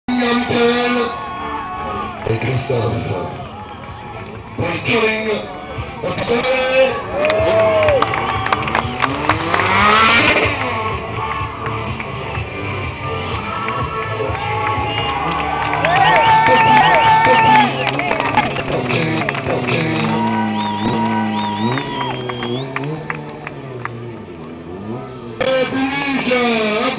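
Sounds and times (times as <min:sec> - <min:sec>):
motorcycle engine revving: 0:05.8 - 0:26.9
loud sound with shifting pitch: 0:06.6 - 0:26.9
music from loudspeakers: 0:09.8 - 0:21.8.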